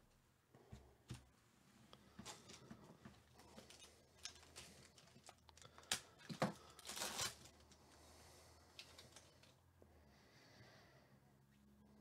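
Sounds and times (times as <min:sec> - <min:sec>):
foil wrapper crinkling and tearing: 0:03.6 - 0:07.8.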